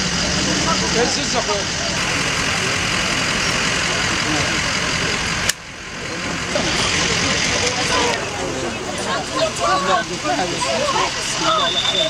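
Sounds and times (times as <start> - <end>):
faint voices: 0.0 - 12.0
vehicle engine idling: 0.0 - 12.0.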